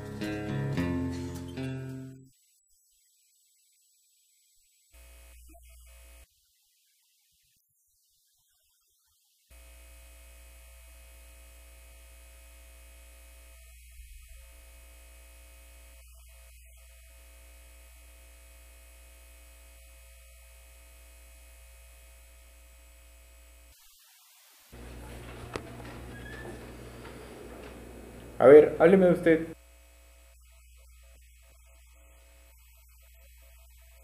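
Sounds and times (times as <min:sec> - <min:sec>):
electrical mains hum: 0:05.0 - 0:06.2, 0:09.5 - 0:23.7, 0:24.7 - 0:34.0.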